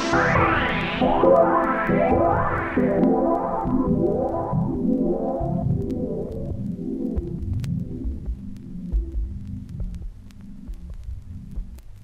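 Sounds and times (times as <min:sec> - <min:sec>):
vinyl record crackle: 0:00.0 - 0:12.0
minimal techno bass pulses: 0:07.2 - 0:11.8.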